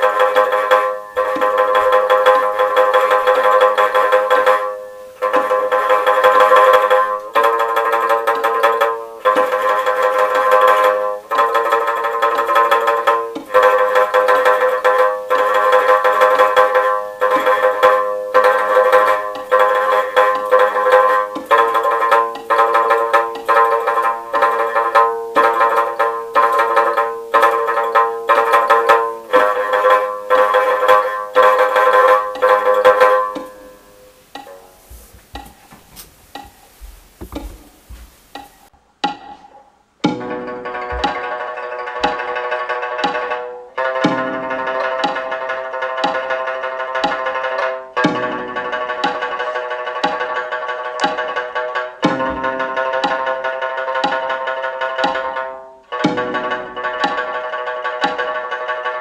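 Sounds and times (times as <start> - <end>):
plucked lute: 0.0 - 59.0.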